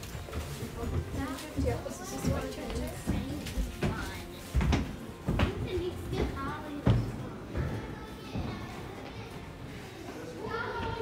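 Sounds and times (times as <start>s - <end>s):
indistinct background voices: 0.0s - 11.0s
child's voice: 5.4s - 11.0s.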